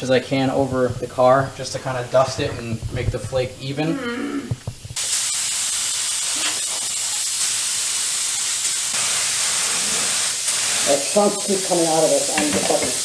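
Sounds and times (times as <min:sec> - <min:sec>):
spray gun spitting paint: 0:04.9 - 0:13.0
paint spray gun hissing: 0:05.0 - 0:13.0.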